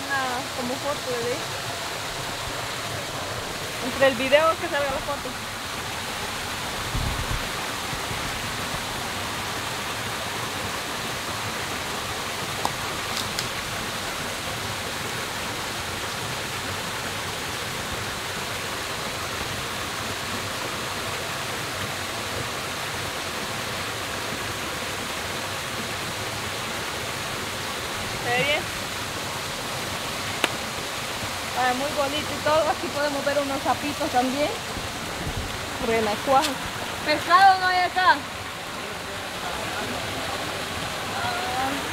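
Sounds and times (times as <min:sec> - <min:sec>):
small waterfall pouring into pool: 0:00.0 - 0:41.9.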